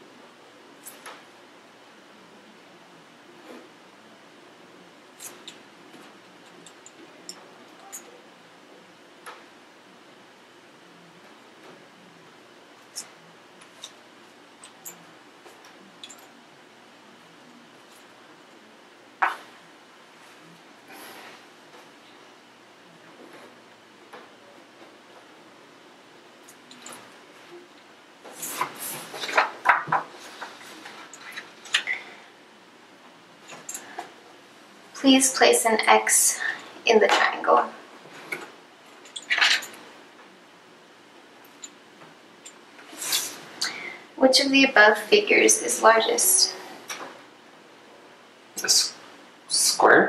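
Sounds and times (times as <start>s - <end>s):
room hiss: 0.0s - 50.0s.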